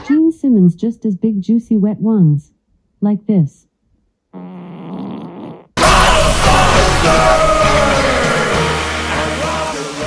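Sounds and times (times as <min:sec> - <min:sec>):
wet fart sound effect: 0:04.3 - 0:05.8
loud rock music: 0:05.8 - 0:10.0.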